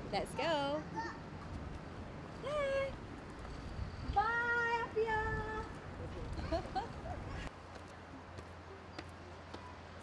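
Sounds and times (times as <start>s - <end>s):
low street hum: 0.0s - 10.0s.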